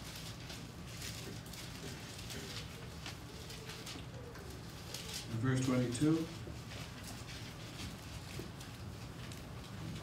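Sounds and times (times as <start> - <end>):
pages rustling: 0.0 - 10.0.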